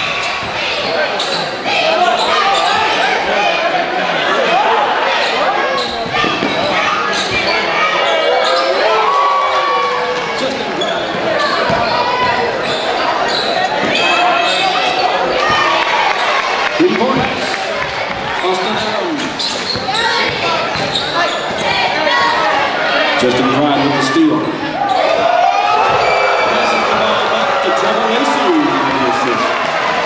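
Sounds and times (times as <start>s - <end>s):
crowd and player voices echoing: 0.0s - 30.0s.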